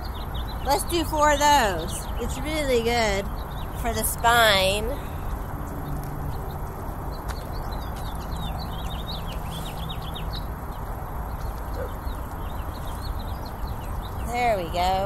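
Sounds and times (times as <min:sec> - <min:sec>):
outdoor background rumble: 0:00.0 - 0:15.0
small birds chirping: 0:00.0 - 0:15.0.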